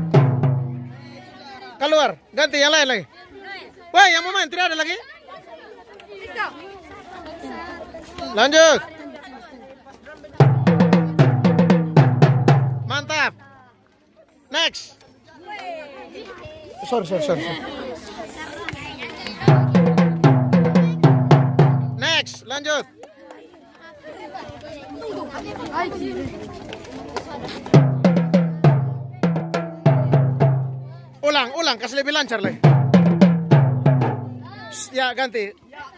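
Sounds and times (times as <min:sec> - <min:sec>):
marching tenor drums: 0:00.0 - 0:01.2, 0:10.4 - 0:13.4, 0:19.4 - 0:22.5, 0:27.7 - 0:30.9, 0:32.5 - 0:34.8
children chattering: 0:00.0 - 0:12.1, 0:13.3 - 0:32.7, 0:33.5 - 0:35.9.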